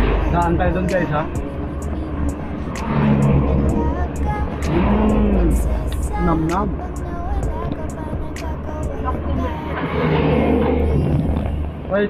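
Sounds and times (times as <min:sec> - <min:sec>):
car cabin rumble: 0:03.4 - 0:09.8, 0:10.4 - 0:12.0.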